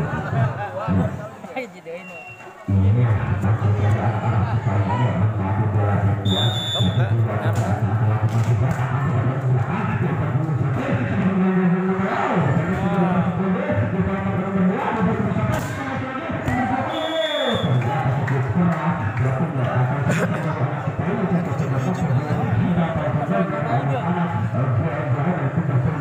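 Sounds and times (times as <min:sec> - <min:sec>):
crowd voices and shouts: 0:00.0 - 0:26.0
music: 0:02.7 - 0:17.0.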